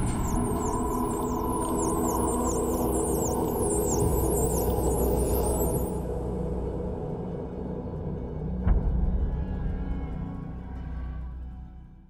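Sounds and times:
low sustained drone: 0.0s - 11.4s.

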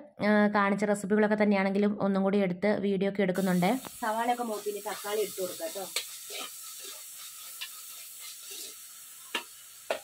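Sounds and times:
food sizzling in oil: 3.4s - 10.0s
metal spatula tapping pan: 5.9s - 10.0s.

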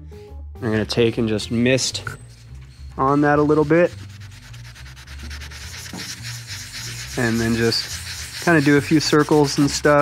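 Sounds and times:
sanding pad wet-sanding: 3.0s - 10.0s.

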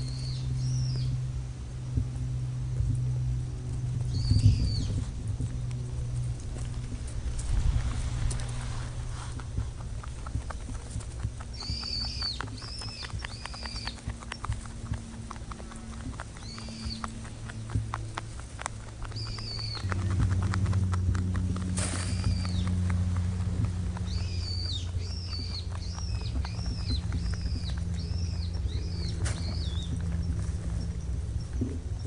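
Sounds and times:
bird chirping: 0.0s - 1.3s, 4.0s - 6.2s, 9.6s - 21.0s, 21.9s - 32.0s
low rumble: 0.0s - 32.0s
rabbit chewing dry hay: 0.0s - 32.0s.

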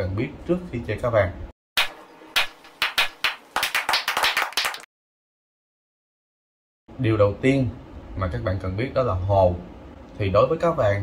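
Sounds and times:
people clapping: 1.8s - 4.9s.

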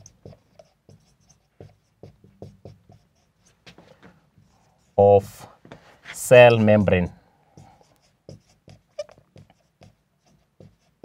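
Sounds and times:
marker writing on whiteboard: 0.0s - 6.9s, 7.5s - 11.0s.

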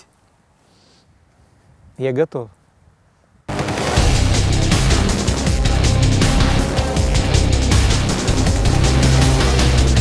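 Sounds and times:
soft hiss: 0.0s - 3.5s.

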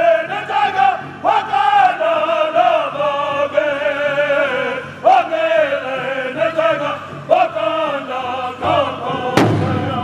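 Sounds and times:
men singing in chorus: 0.0s - 10.0s.

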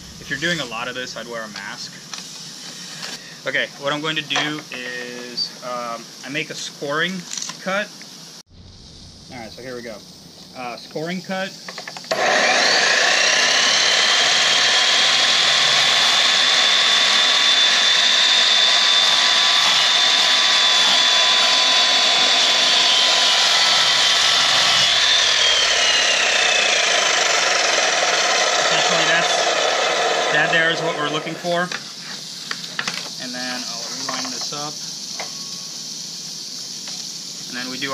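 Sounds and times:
saw cutting tile: 12.1s - 31.4s.

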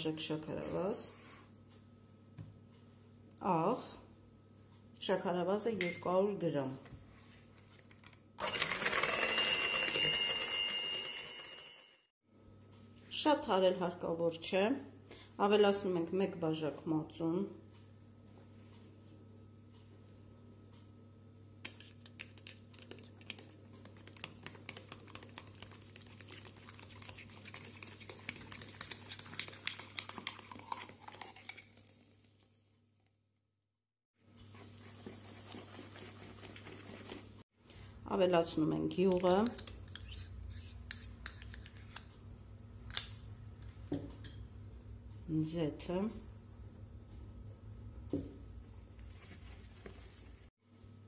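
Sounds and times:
electric hand mixer whirring: 8.4s - 11.8s.

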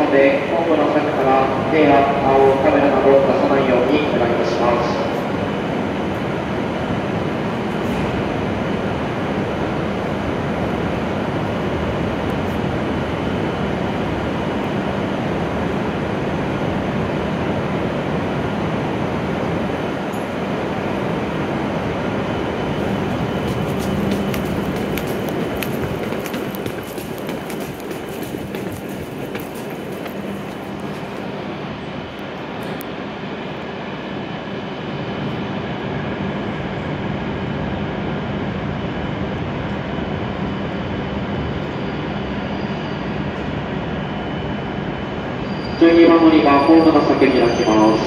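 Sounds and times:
train running slowly into platform: 0.0s - 48.0s.

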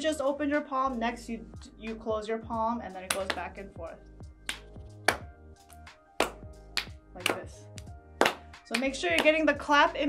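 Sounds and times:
soft background music: 0.0s - 10.0s
hand claps: 3.1s - 3.5s, 4.4s - 5.3s, 6.2s - 9.4s.

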